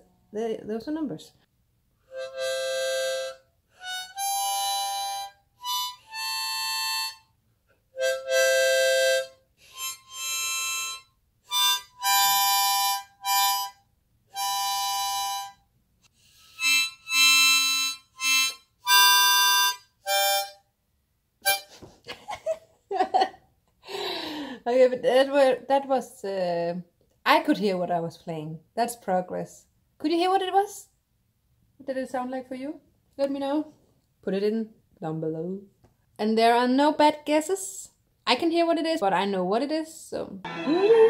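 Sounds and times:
harmonica notes and chords: 2.0 - 7.3, 7.9 - 20.7, 21.4 - 21.8, 40.5 - 41.0.

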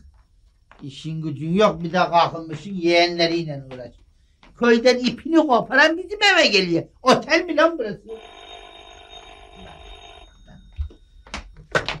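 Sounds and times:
telephone ringing: 8.0 - 11.2.

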